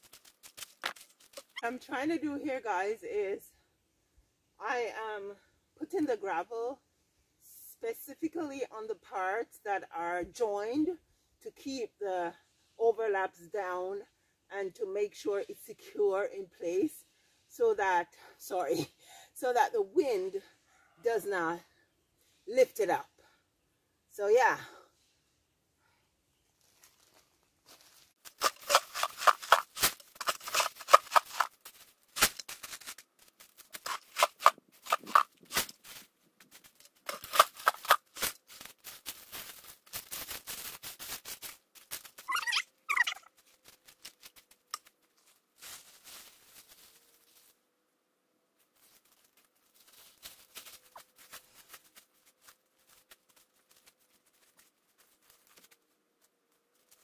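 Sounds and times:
clicks of stones set down: 0:00.0 - 0:01.6, 0:28.3 - 0:33.0, 0:33.6 - 0:38.4
gravel rattling in plastic bucket: 0:28.2 - 0:38.5
short squeak: 0:42.3 - 0:43.3.

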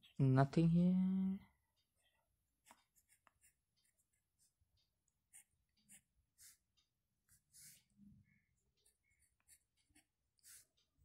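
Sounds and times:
pen scratching on paper: 0:02.6 - 0:04.6, 0:05.2 - 0:08.0, 0:08.8 - 0:11.0.

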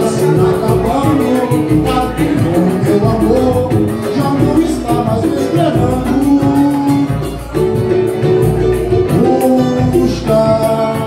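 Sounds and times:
voices singing: 0:00.0 - 0:07.5
pandeiro rhythm: 0:00.0 - 0:11.0
strummed cavaquinho and guitar: 0:00.0 - 0:11.0.

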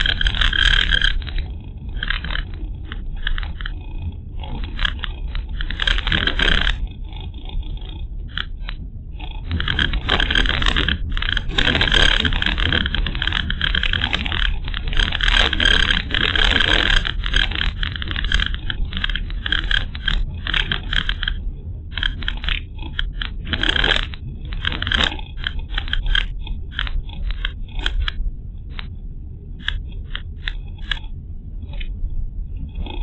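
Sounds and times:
loose parts rattling: 0:09.4 - 0:28.2.

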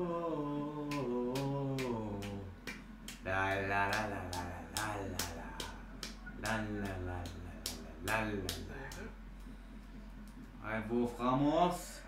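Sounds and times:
person singing a melody: 0:00.0 - 0:02.6, 0:03.2 - 0:09.1
steady beat of sharp clicks: 0:00.9 - 0:10.6.

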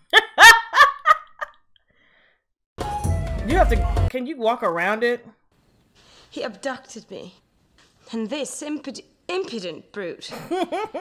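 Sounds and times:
woman laughing: 0:00.1 - 0:01.6, 0:10.3 - 0:11.0.

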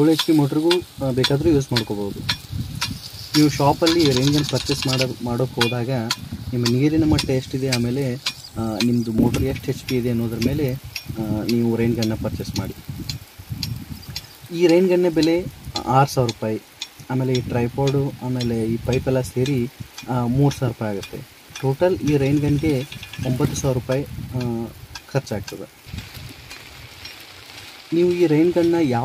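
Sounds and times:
man speaking: 0:00.0 - 0:02.2, 0:03.4 - 0:12.8, 0:14.5 - 0:25.8, 0:27.9 - 0:29.0
sprinkler water spraying hiss: 0:00.0 - 0:29.0.

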